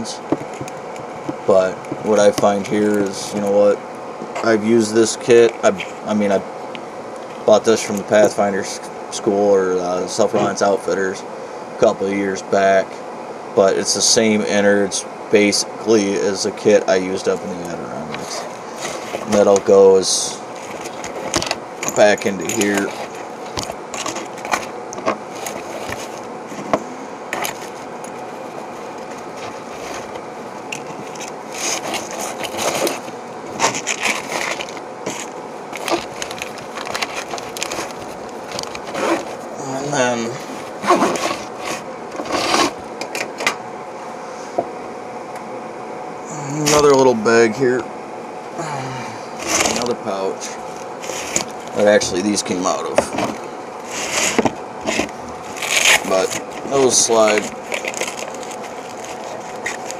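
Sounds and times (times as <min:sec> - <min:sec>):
scraping and rubbing on wood: 0:20.5 - 0:39.5, 0:40.4 - 0:43.5, 0:51.0 - 0:52.2, 0:52.9 - 0:59.9.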